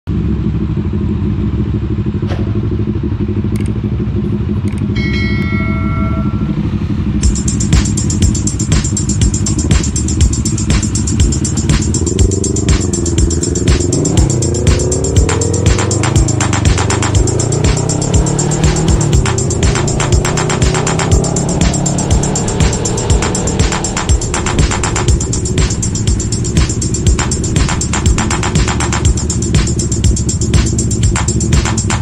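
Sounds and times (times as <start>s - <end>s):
motorcycle engine idling: 0.1s - 32.0s
music with steady beat: 7.2s - 32.0s.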